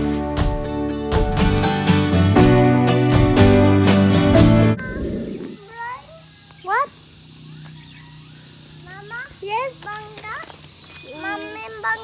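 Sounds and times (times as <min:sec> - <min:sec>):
background music: 0:00.0 - 0:04.8
rising animal calls: 0:04.7 - 0:08.6.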